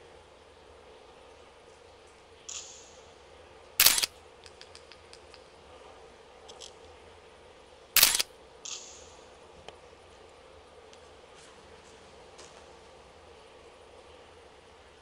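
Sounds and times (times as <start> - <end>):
camera shutter clack: 3.8 - 4.9, 8.0 - 9.0.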